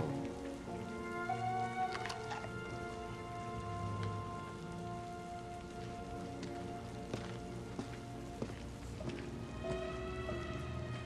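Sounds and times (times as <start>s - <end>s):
film score long held notes: 0.0s - 11.0s
steady hiss: 0.0s - 11.0s.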